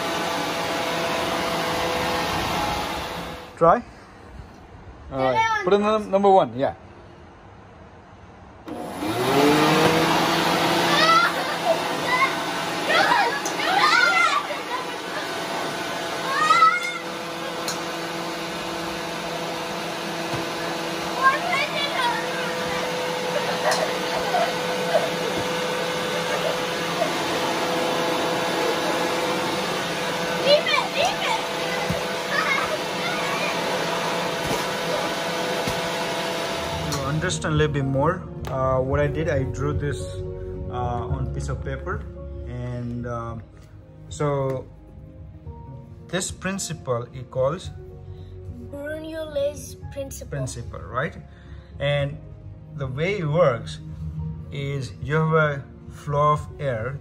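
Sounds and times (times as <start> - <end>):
electric leaf blower motor: 0.0 - 3.6, 8.7 - 37.6
children's excited voices: 10.8 - 15.4, 16.2 - 17.2, 21.2 - 23.6, 30.4 - 33.8.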